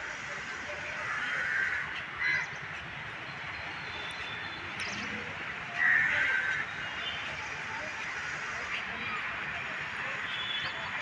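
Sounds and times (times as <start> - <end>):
faint background noise: 0.0 - 11.0
crows cawing: 1.0 - 2.5, 5.8 - 6.7.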